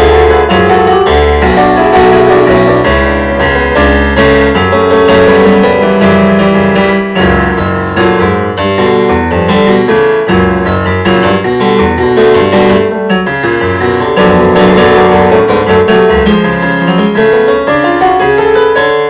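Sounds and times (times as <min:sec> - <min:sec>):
piano keyboard improvisation: 0:00.0 - 0:19.0.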